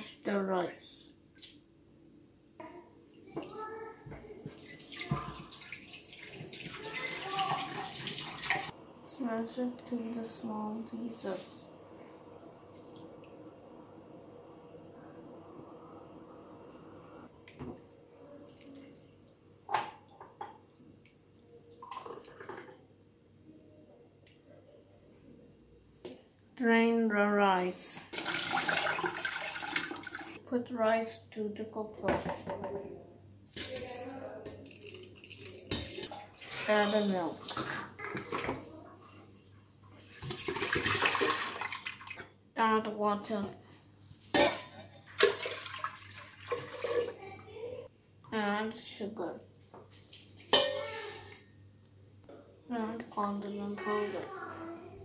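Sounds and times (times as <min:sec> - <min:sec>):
water pouring into a pot: 0:04.6 - 0:08.8, 0:21.8 - 0:22.8, 0:28.0 - 0:30.4, 0:40.0 - 0:42.2, 0:45.0 - 0:47.3.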